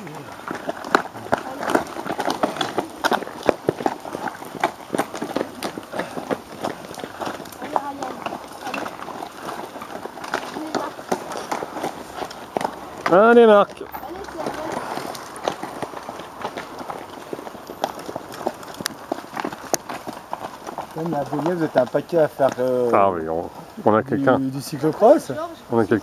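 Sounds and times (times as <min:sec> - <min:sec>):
dry leaves crunching: 0:00.0 - 0:22.9
bikes knocking: 0:00.0 - 0:26.0
footsteps running uphill: 0:00.0 - 0:26.0.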